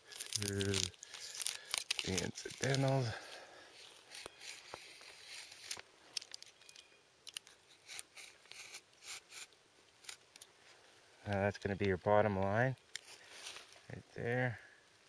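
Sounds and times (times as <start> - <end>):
knife scratching birch bark: 4.1 - 5.8, 7.7 - 10.2.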